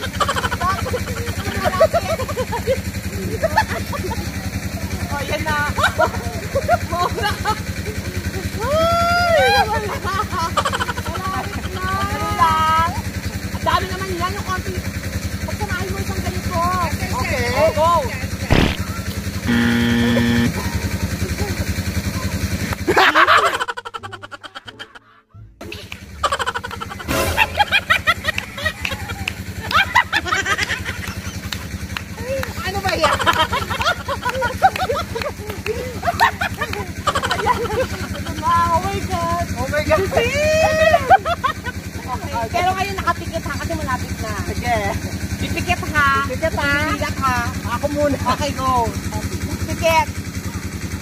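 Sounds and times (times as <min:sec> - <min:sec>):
small engine running: 0:00.0 - 0:24.6, 0:25.6 - 0:51.0
loud vocal shout: 0:08.6 - 0:09.8
music: 0:24.1 - 0:26.1, 0:27.0 - 0:27.6.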